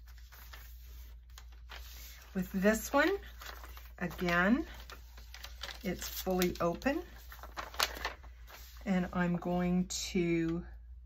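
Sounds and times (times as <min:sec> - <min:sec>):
paper crinkle: 0:00.0 - 0:08.9
paper envelope rustling: 0:00.0 - 0:09.2.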